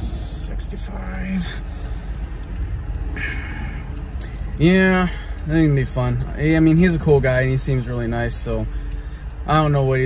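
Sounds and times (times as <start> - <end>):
low rumble in car cabin: 0.0 - 10.0.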